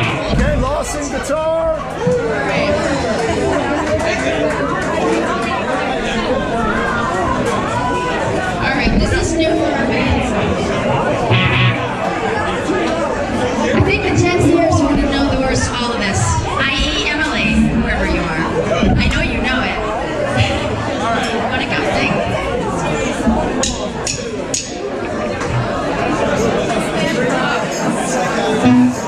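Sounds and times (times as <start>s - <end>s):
audience chatter: 0.0s - 29.0s.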